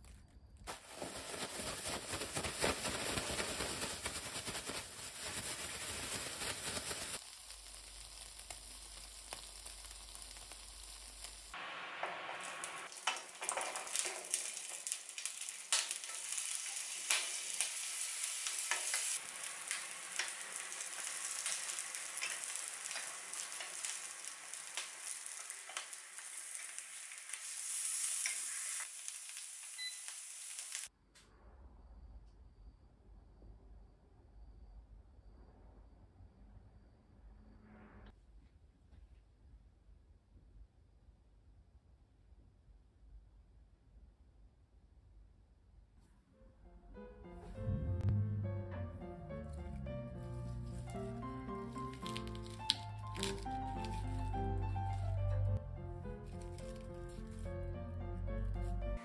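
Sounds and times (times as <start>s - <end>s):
plastic bag crinkling: 0.0s - 11.6s, 12.9s - 27.5s, 50.3s - 55.2s
vegetables sizzling in oil: 0.7s - 30.9s, 50.3s - 55.0s
low hum: 46.9s - 52.4s.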